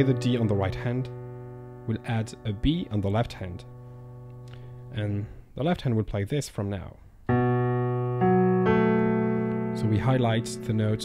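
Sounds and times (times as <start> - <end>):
piano chord notes ringing: 0.0 - 5.1, 7.3 - 11.0.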